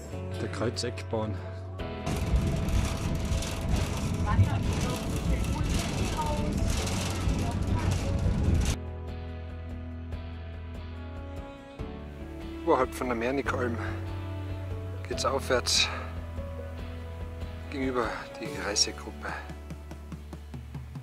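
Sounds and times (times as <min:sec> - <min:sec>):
background music: 0:00.0 - 0:21.0
funicular mechanical running noise: 0:02.1 - 0:08.8.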